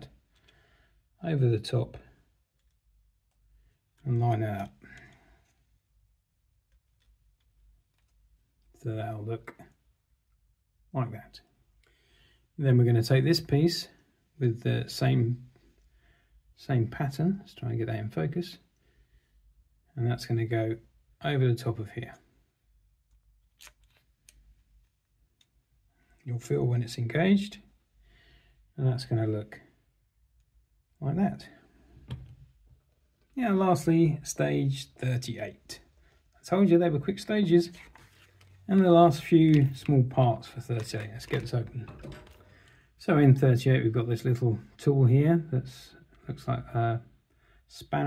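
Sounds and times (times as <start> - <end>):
plastic parts clicking: 6.7 - 8.2, 23.1 - 24.5, 40.8 - 42.8.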